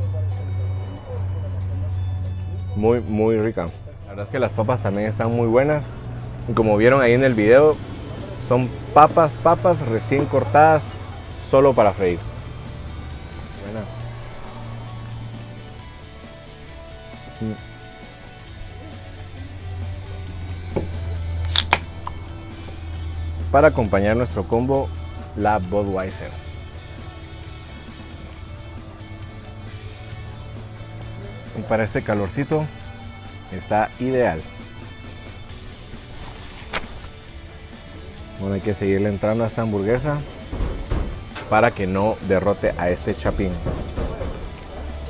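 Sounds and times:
background music: 0.0s - 45.0s
beer can opening crack and hiss: 21.4s - 22.2s
paper napkin rustling: 35.7s - 37.3s.

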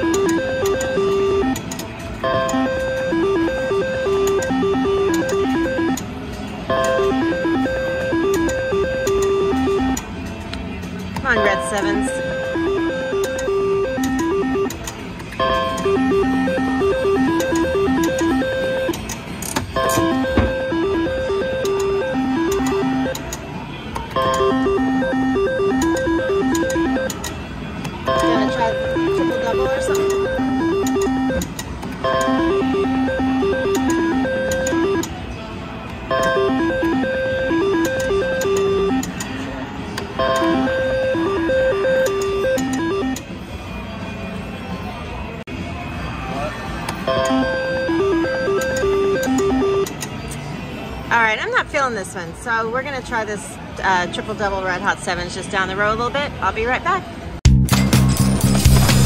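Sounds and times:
slot machine beeping melody: 0.0s - 10.2s, 11.3s - 23.4s, 24.1s - 27.4s, 28.0s - 35.2s, 36.0s - 39.2s, 40.1s - 43.4s, 47.0s - 50.0s
casino chatter and noise: 0.0s - 57.4s.

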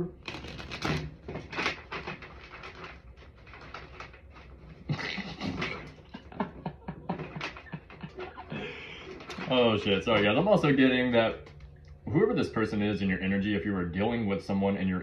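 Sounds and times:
cards being shuffled: 0.2s - 6.1s.

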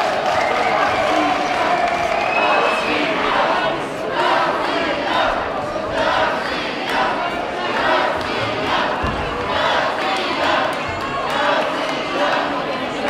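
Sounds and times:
arena crowd chanting: 0.0s - 13.0s.

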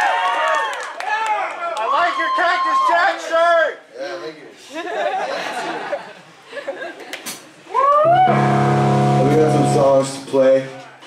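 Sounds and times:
electric guitar pitch glide: 8.0s - 10.2s
electric guitar chord ringing: 8.1s - 10.3s.

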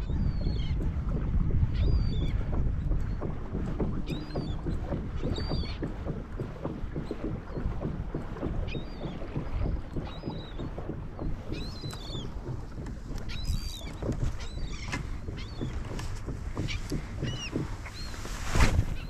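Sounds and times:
waves lapping against a kayak: 0.0s - 19.0s
wind: 0.0s - 19.0s.

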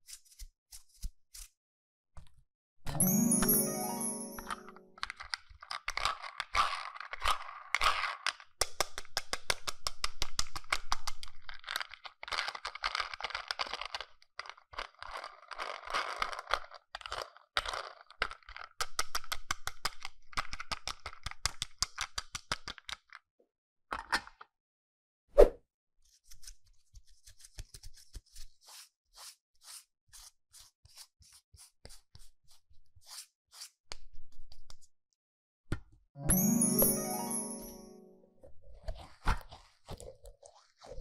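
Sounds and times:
plastic toy car clicking and scraping: 5.0s - 23.3s, 38.7s - 41.0s.

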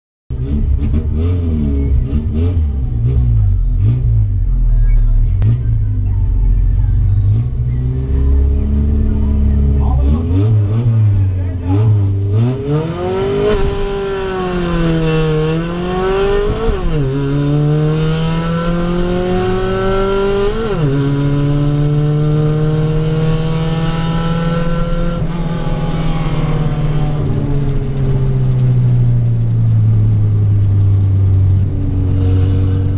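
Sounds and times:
car engine accelerating: 0.3s - 32.9s.

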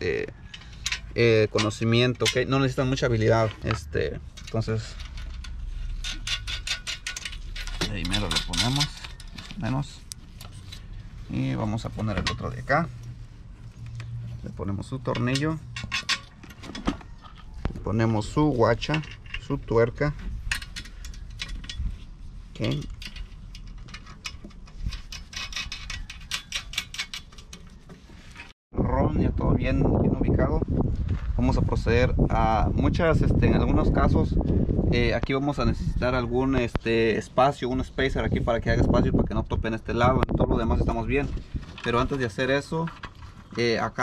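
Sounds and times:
small metal clicks of bolt: 22.7s - 27.7s.

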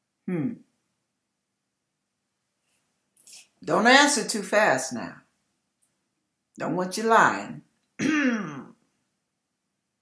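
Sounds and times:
woman clearing her throat: 8.0s - 8.8s.

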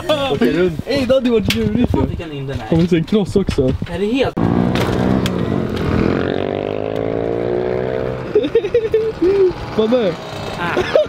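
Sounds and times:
moped engine revving: 4.4s - 11.0s.

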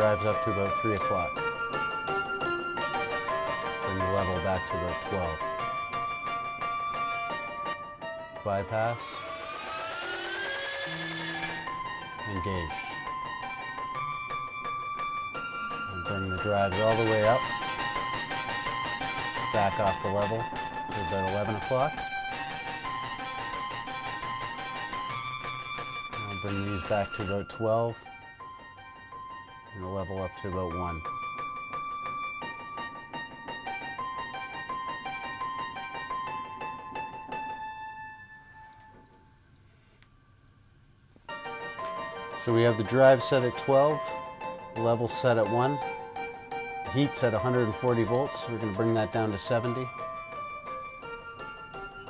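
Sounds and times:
acoustic piano notes ringing: 0.0s - 39.5s, 40.1s - 52.0s
high tone sliding up in pitch: 8.9s - 12.1s.

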